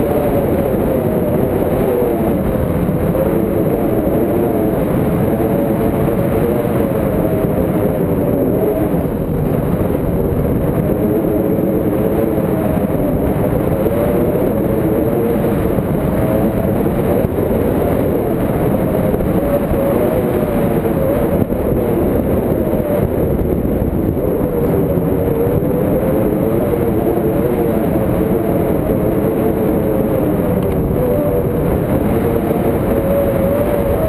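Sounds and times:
wind rush over microphone: 0.0 - 34.0.

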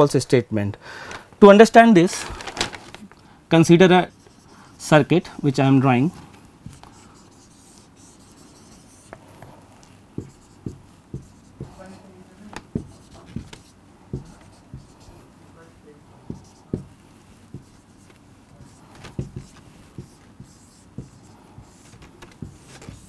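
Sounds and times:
marker drawing on whiteboard: 4.0 - 5.3, 6.6 - 15.3, 16.1 - 23.0.

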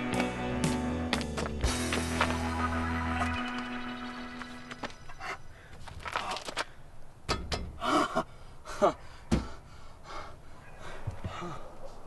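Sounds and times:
man gasping and panting: 7.8 - 12.0.

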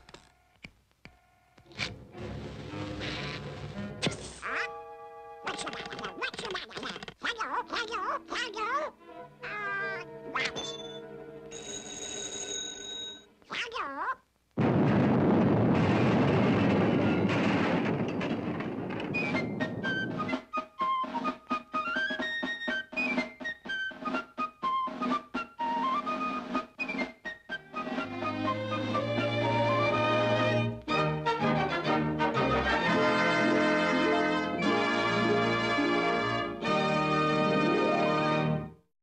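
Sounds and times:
orchestral music: 9.0 - 11.5, 23.9 - 38.8
telephone bell ringing: 10.6 - 13.3
long loud crash: 14.6 - 20.3.

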